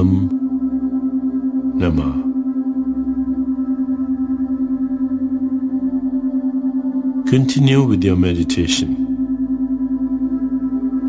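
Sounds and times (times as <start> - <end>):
ambient meditation drone music: 0.0 - 11.0.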